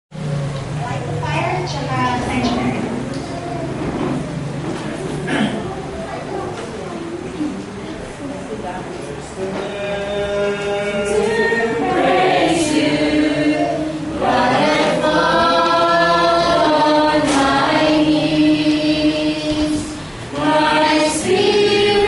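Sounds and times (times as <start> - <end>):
mixed choir singing: 9.4 - 22.0.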